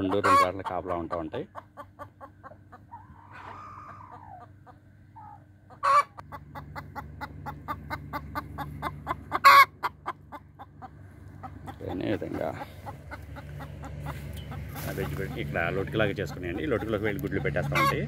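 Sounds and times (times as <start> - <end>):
chicken squawks: 0.0 - 18.0
chickens clucking: 0.0 - 18.0.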